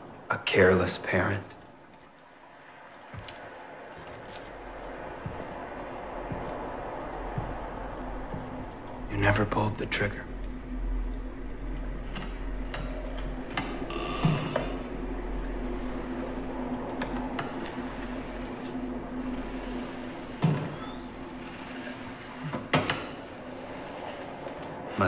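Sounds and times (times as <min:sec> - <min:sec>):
low ambient score drone: 0:00.0 - 0:25.0.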